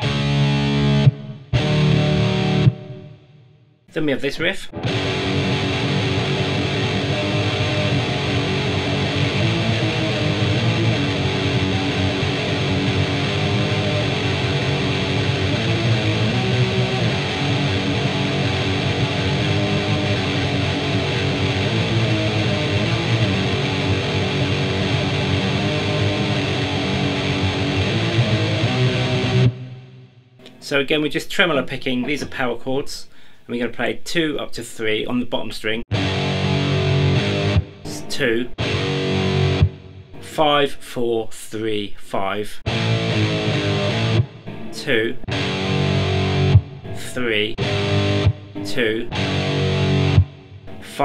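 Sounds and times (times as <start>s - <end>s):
distorted electric guitar riff: 0.0s - 3.6s, 4.7s - 30.6s, 35.9s - 40.8s, 42.6s - 51.0s.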